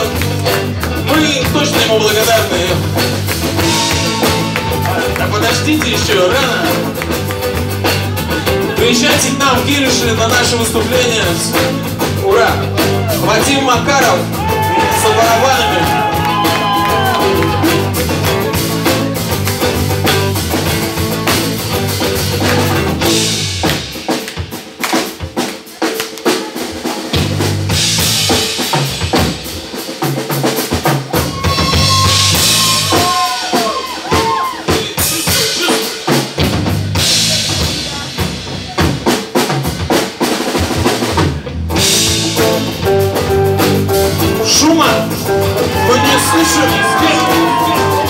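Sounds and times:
drum kit playing: 0.0s - 48.0s.

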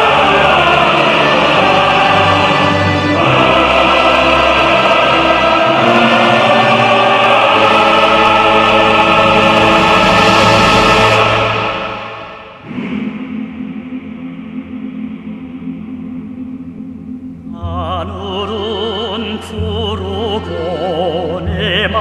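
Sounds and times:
choir singing with instruments: 0.0s - 22.0s
quiet music: 14.7s - 22.0s.

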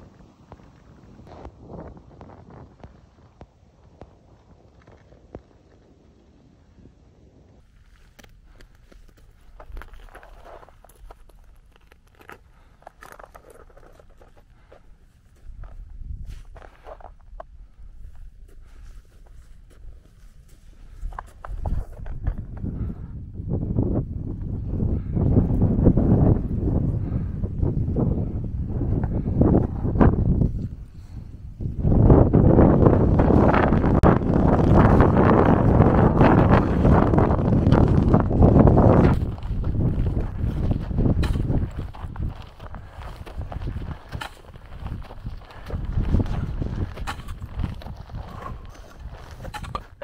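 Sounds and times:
wind buffeting microphone: 0.0s - 11.9s, 12.6s - 50.0s
footsteps on rock and snow: 7.6s - 23.0s, 32.0s - 50.0s.

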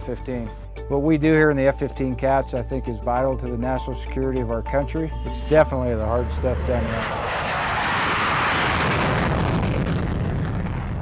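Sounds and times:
deep rumble: 5.1s - 11.0s
loud dense rushing noise: 6.2s - 9.8s.

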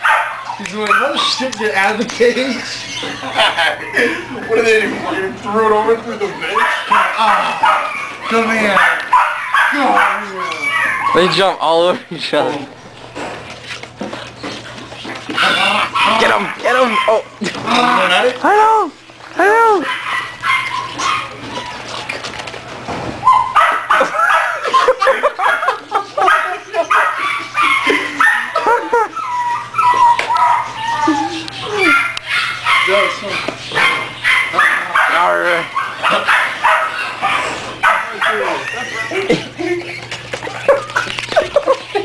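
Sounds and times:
puppy yelp: 0.0s - 2.0s, 5.6s - 11.5s, 15.0s - 22.4s, 23.2s - 39.3s
puppies yipping and yapping: 0.0s - 42.0s.

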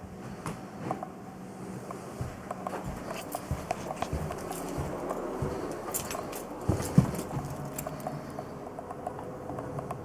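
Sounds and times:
footsteps on carpet: 1.7s - 8.3s.

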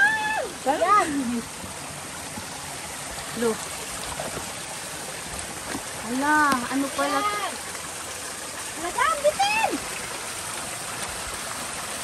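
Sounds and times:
stream running over rocks: 0.0s - 12.0s.

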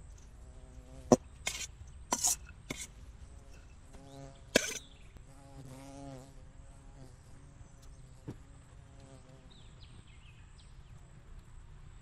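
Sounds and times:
knife scraping steel bowl: 1.5s - 2.9s, 4.6s - 4.9s
fly buzzing past: 2.8s - 9.6s.

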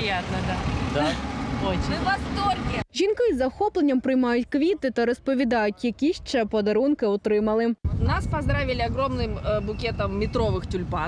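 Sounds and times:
passing cars rumble: 0.0s - 2.8s
woman's voice: 2.0s - 10.3s.

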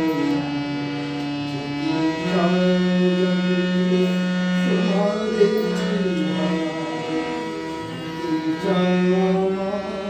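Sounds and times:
harmonium sustained chord: 0.0s - 10.0s.

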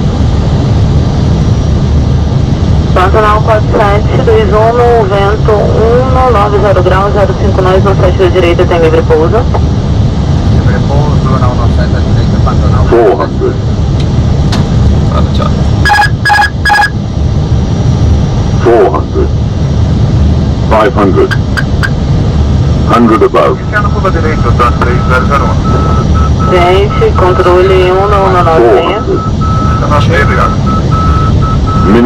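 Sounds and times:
cockpit airflow and engines rumble: 0.0s - 32.0s
radio voices: 3.0s - 9.6s, 10.6s - 13.6s, 18.6s - 19.4s, 20.7s - 22.0s, 22.9s - 32.0s
warning tones: 15.8s - 17.0s, 21.2s - 22.0s, 23.9s - 32.0s.

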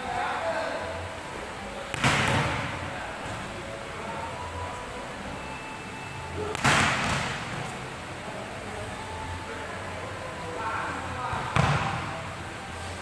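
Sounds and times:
volleyball struck hard: 1.9s - 2.8s, 6.5s - 7.5s, 11.5s - 12.1s.

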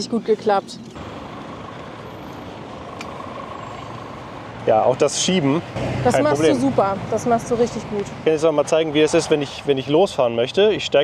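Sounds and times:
street traffic noise: 0.0s - 11.0s.

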